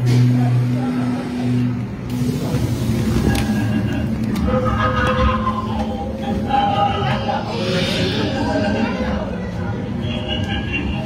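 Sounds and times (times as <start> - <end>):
low rumbling drone: 4.0 - 10.3
higher sustained tones: 4.5 - 10.0.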